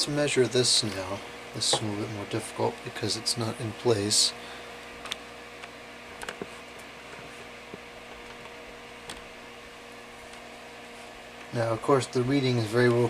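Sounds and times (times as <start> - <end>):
steady electrical hum: 0.0 - 13.0.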